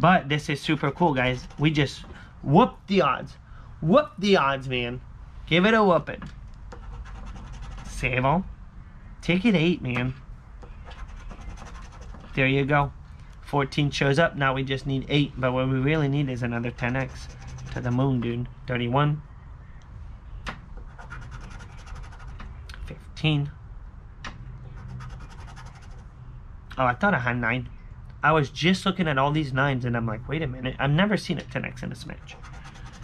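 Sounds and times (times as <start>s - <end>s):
token scratching lottery ticket: 0.7s - 2.0s, 6.7s - 8.1s, 10.8s - 12.4s, 16.4s - 18.2s, 20.9s - 22.4s, 24.7s - 26.1s, 31.9s - 33.0s
chip scraping lottery ticket: 1.2s - 2.0s, 16.7s - 18.0s, 24.8s - 26.0s, 32.1s - 33.0s.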